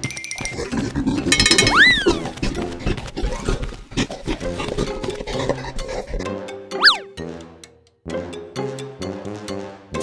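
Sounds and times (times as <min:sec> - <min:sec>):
playful cartoon music: 0:00.2 - 0:10.0
pitch glide sound effect: 0:06.8 - 0:07.1.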